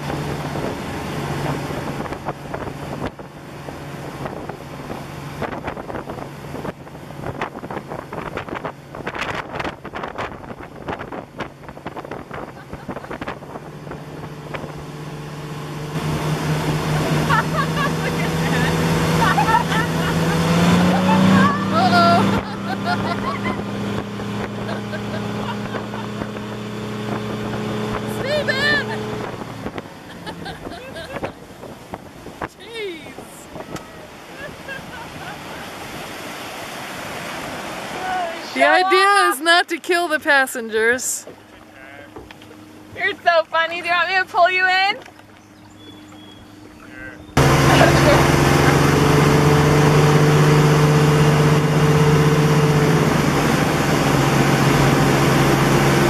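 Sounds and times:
wind buffeting microphone: 0.0s - 15.2s, 16.0s - 36.3s
motorboat engine running: 0.0s - 56.0s
wake water rushing: 0.0s - 56.0s.

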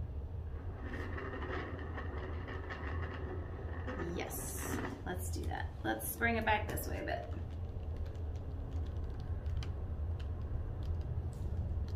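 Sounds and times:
turntable rolling rumble: 0.0s - 11.9s.

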